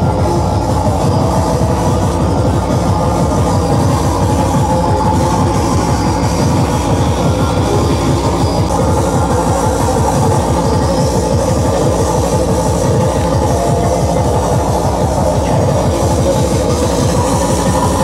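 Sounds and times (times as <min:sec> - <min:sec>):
loud electronic dance music: 0:00.0 - 0:18.0.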